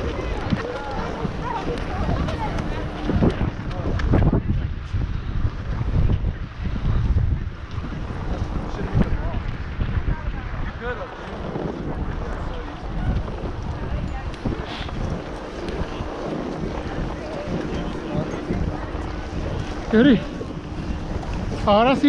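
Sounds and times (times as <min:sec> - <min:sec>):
wind buffeting microphone: 0:00.0 - 0:22.0
skis sliding over snow: 0:11.0 - 0:22.0.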